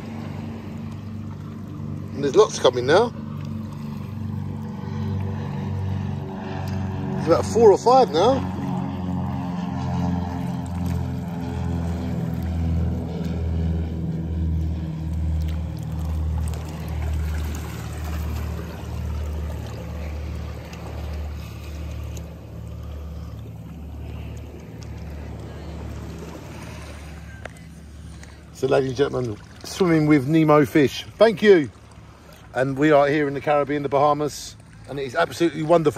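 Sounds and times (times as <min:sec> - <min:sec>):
pulsing underwater hum: 0:00.0 - 0:35.9.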